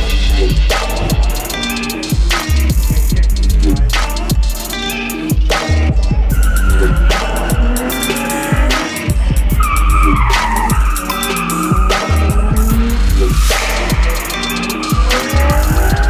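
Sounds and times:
loud music with heavy bass beat: 0:00.0 - 0:16.0
car tyres squealing: 0:06.2 - 0:16.0.

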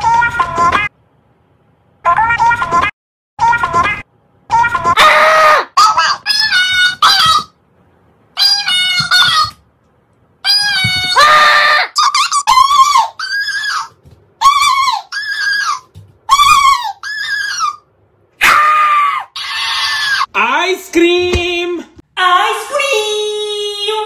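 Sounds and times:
toy repeating voice squeakily: 0:05.8 - 0:07.5, 0:08.4 - 0:09.6, 0:10.5 - 0:11.2, 0:12.0 - 0:17.8.

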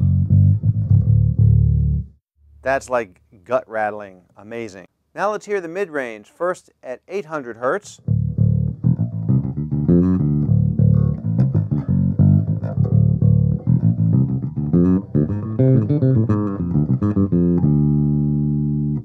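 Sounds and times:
electric bass plucked notes: 0:00.0 - 0:02.2, 0:08.0 - 0:19.0.

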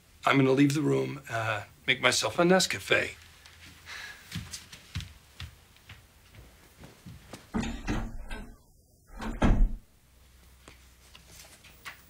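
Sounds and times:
drawers clunking: 0:07.5 - 0:09.8
papers rustling: 0:10.6 - 0:12.0.

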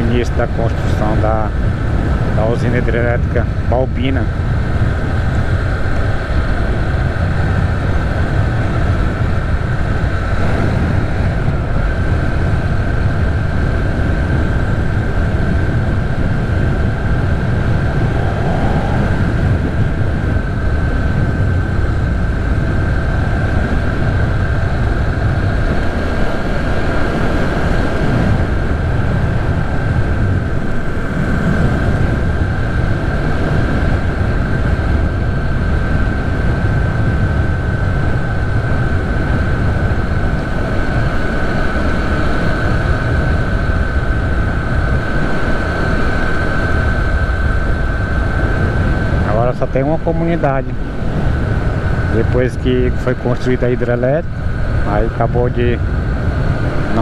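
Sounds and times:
thin high whine: 0:00.0 - 0:57.0
wind rush on microphone: 0:00.0 - 0:57.0.

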